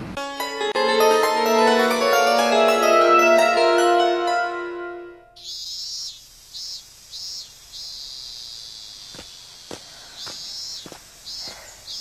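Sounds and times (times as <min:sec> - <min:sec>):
mallet percussion music: 0:00.2 - 0:05.2
insects chirring: 0:05.4 - 0:12.0
soft footsteps: 0:09.1 - 0:11.7.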